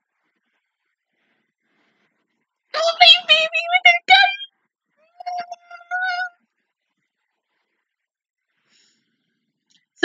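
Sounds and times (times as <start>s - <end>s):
high-pitched vocal sound: 2.8s - 4.5s, 5.1s - 6.3s.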